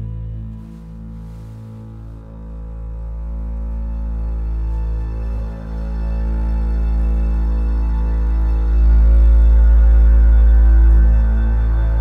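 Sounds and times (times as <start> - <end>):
low bowed strings drone: 0.0 - 12.0.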